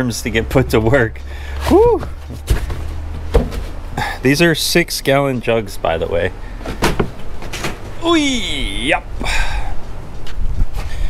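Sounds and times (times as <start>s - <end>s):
plastic fuel jugs knocking: 6.6s - 7.9s.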